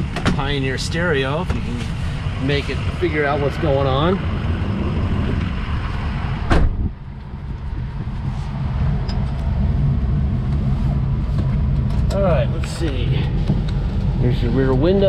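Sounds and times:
diesel engine idling: 0.0s - 15.0s
sharp knock: 6.4s - 6.9s.

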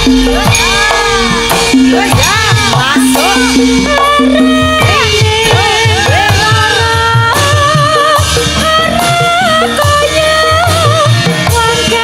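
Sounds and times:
fast drum beat: 0.0s - 12.0s
live band accompaniment: 0.0s - 12.0s
woman singing into a microphone: 0.0s - 12.0s.

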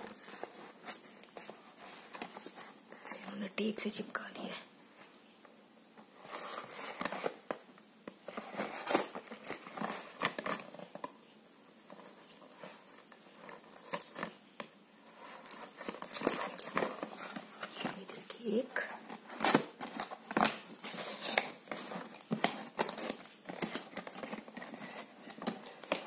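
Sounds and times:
plastic wrapping crinkling: 6.2s - 26.0s.

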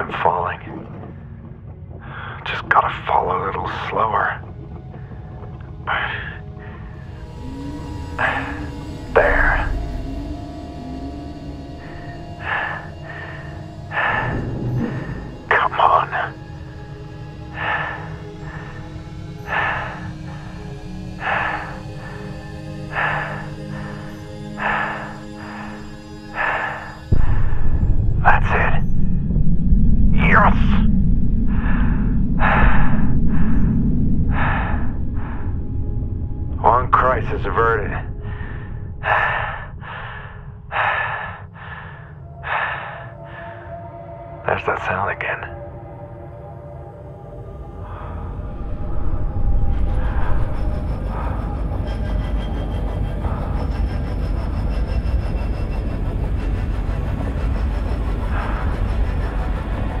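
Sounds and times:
deep rumble: 0.0s - 44.6s, 45.6s - 60.0s
low music drone: 0.0s - 60.0s
heavy breathing inside a helmet: 11.8s - 15.5s, 17.4s - 27.7s, 38.2s - 44.1s.

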